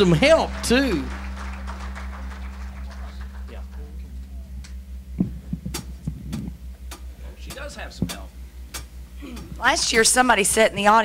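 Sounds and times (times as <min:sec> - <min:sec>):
low electrical hum: 0:00.0 - 0:11.0
microphone handling clicks: 0:04.6 - 0:09.6
microphone knock: 0:05.2 - 0:08.3.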